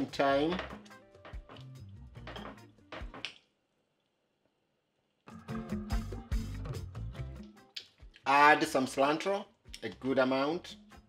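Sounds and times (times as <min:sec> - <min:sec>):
quiet background music: 0:00.0 - 0:03.6, 0:05.2 - 0:11.0.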